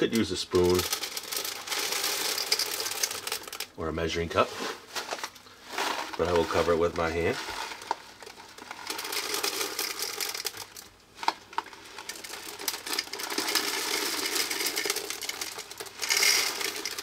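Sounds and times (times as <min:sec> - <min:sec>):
salt grains pouring onto ice: 0:00.0 - 0:03.7, 0:05.7 - 0:10.9, 0:11.7 - 0:17.0.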